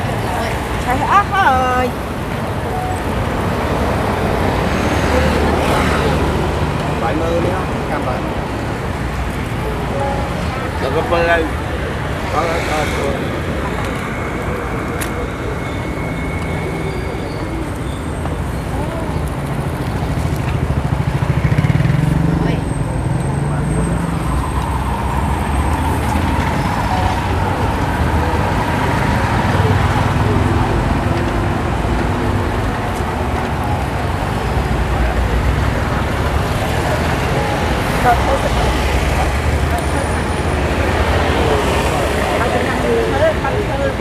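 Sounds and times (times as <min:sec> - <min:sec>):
people's voices: 0:00.0 - 0:44.0
vehicle engines running: 0:00.0 - 0:44.0.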